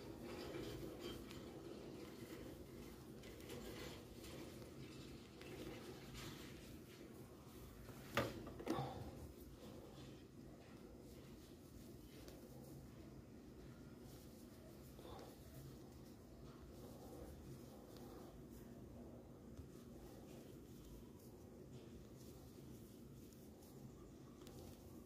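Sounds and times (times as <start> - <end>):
yarn rustling: 0.0 - 25.0.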